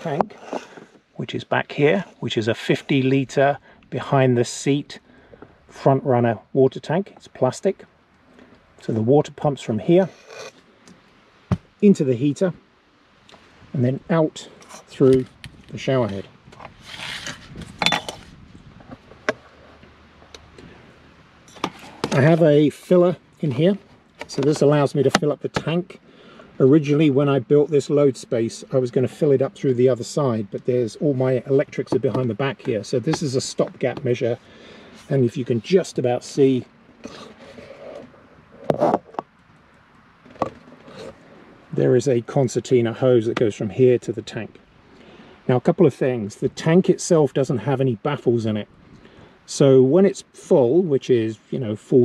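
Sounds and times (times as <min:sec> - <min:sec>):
rubbing scrape: 0:00.3 - 0:00.9, 0:16.8 - 0:18.3, 0:37.0 - 0:39.1.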